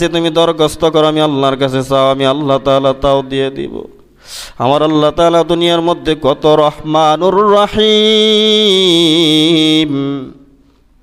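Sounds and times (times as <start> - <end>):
man chanting: 0.0 - 10.6.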